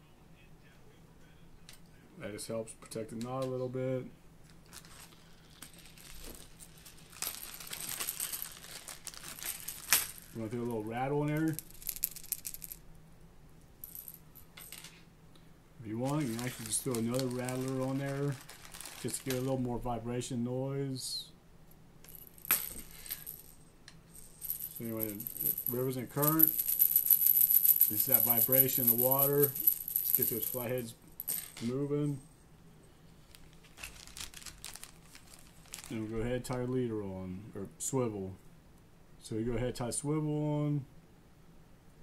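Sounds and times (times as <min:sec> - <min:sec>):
small beads clicking and rattling: 0:04.6 - 0:10.7, 0:11.3 - 0:12.8, 0:13.8 - 0:15.0, 0:16.0 - 0:19.5, 0:22.0 - 0:31.7, 0:33.2 - 0:36.1
fishing rattle jingling: 0:24.2 - 0:31.4.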